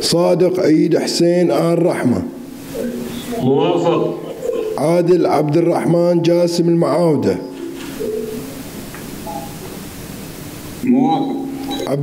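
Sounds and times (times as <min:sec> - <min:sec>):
person speaking: 0:00.0 - 0:07.6
audio line hiss: 0:00.0 - 0:12.0.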